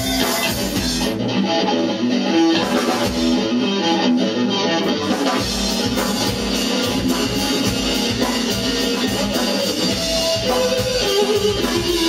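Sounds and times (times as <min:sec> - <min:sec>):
electric guitars: 0:00.0 - 0:12.0
live rock band instrumental: 0:00.0 - 0:12.0.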